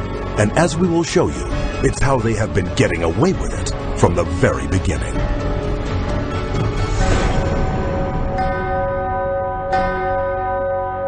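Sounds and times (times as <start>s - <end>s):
dark title music: 0.0s - 11.0s
bell tolling: 6.4s - 11.0s.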